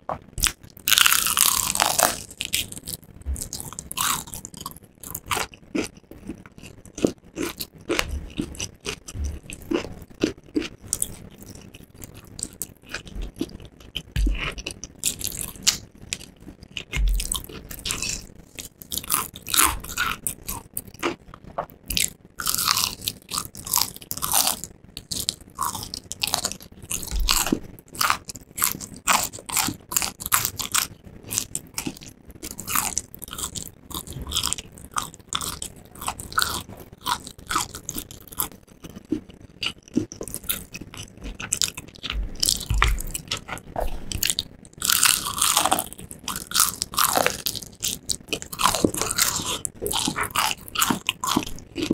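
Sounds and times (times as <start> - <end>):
chewing crispy fried chicken: 0.1 - 51.9.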